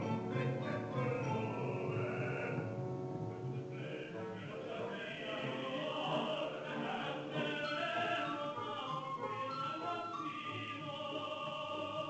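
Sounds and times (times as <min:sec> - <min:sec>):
opera chorus singing: 0:00.0 - 0:12.0
orchestra playing: 0:00.0 - 0:12.0.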